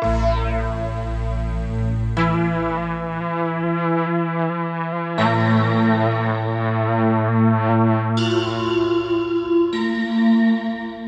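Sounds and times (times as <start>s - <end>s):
brassy synth held note: 0.0s - 3.5s
deep bass layer: 0.0s - 8.2s.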